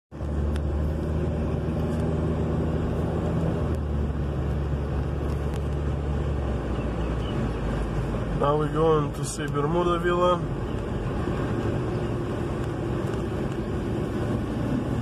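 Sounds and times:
car engine hum: 0.1s - 15.0s
road noise: 0.1s - 15.0s.

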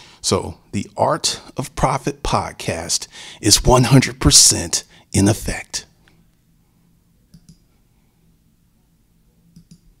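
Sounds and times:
low room hum: 0.0s - 10.0s
computer mouse clicks: 7.3s - 7.7s, 9.5s - 9.9s.

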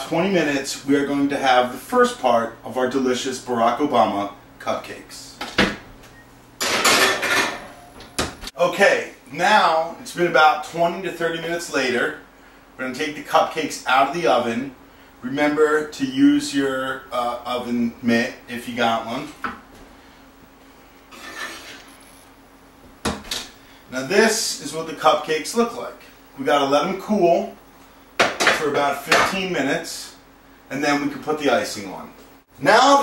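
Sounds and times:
metal muffin tin scraping: 21.1s - 22.2s.

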